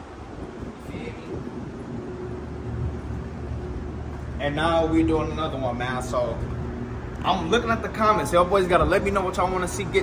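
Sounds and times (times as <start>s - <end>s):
faint steady hum: 0.0s - 10.0s
wind buffeting microphone: 0.0s - 10.0s.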